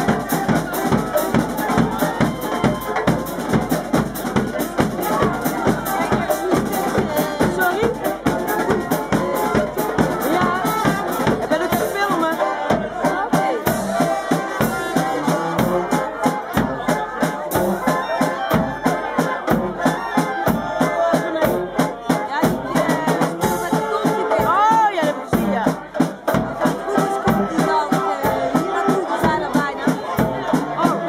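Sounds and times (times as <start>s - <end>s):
brass band playing: 0.0s - 31.0s
snare and bass drums beat: 0.0s - 31.0s.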